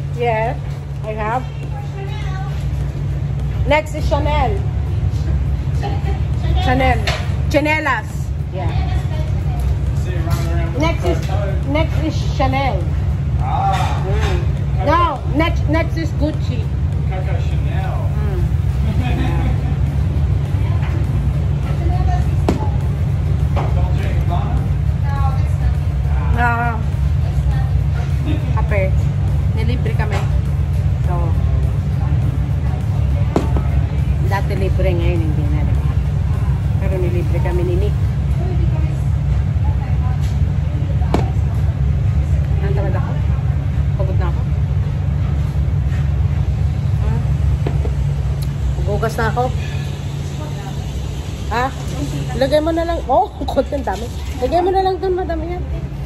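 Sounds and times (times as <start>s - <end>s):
low machine rumble: 0.0s - 56.0s.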